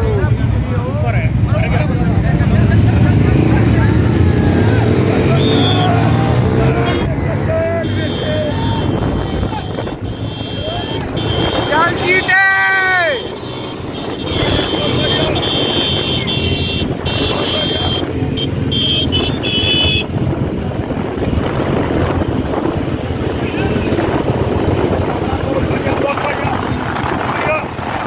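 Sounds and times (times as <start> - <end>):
vehicle engine running: 0.0 - 28.0
people shouting: 4.2 - 18.0
wind on microphone: 19.1 - 28.0.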